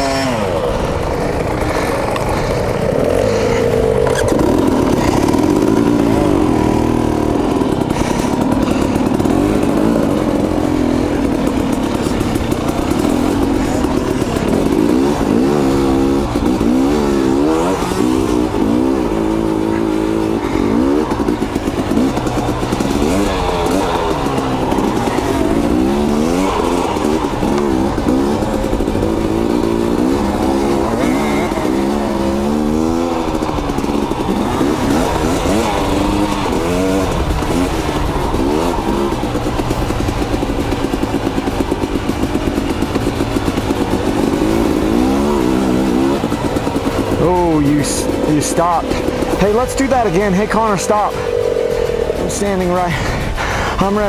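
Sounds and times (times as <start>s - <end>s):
two-stroke dirt bike engines revving: 0.0s - 54.0s.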